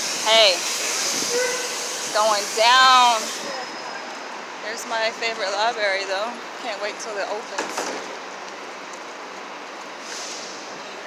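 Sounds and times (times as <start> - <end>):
hiss of distant traffic: 0.0 - 11.0.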